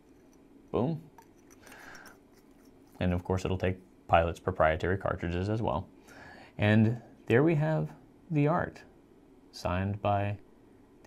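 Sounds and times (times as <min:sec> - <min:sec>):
pen barrel screwing scrape: 0:01.2 - 0:03.4.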